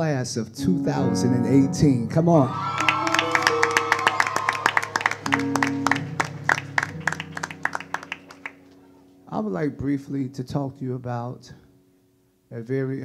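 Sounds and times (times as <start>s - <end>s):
held keyboard chords: 0.6s - 11.0s
hand clapping: 2.8s - 8.8s.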